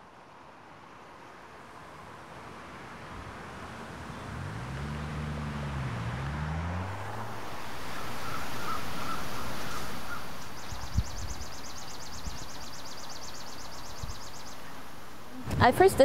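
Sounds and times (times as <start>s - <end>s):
road traffic: 0.0s - 16.0s
passing vehicle hum: 1.0s - 11.0s
bird chirps: 7.9s - 15.0s.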